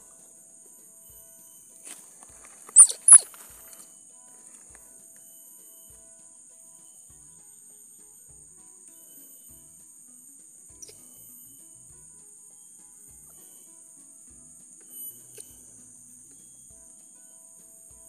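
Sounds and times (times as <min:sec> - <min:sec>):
insect chorus: 0:00.0 - 0:18.0
quiet background music: 0:00.0 - 0:18.0.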